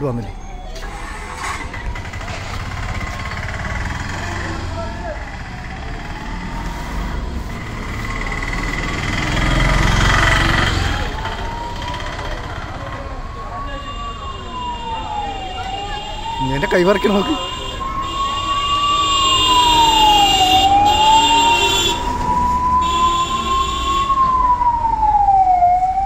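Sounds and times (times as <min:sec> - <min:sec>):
emergency siren wailing: 0:00.0 - 0:26.0
low traffic rumble: 0:00.0 - 0:26.0.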